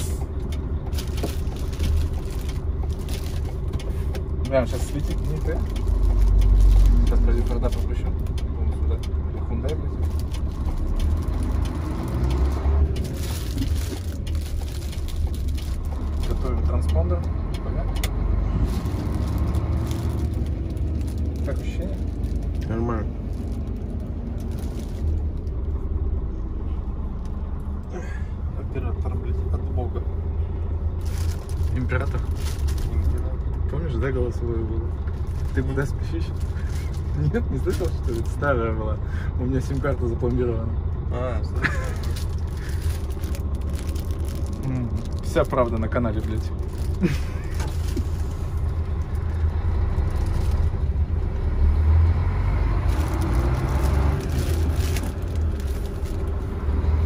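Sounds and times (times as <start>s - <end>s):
truck engine and road rumble: 0.0s - 57.0s.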